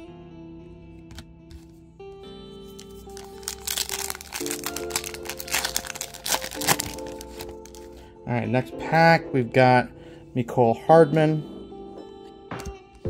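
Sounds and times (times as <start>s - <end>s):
background music with held chords: 0.0s - 13.0s
foil wrapper crinkling and tearing: 2.6s - 8.0s.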